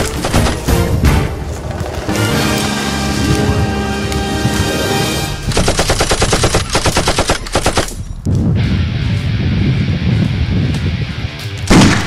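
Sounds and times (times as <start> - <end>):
music: 0.0 - 5.6, 8.2 - 12.0
automatic gunfire bursts: 5.5 - 8.0.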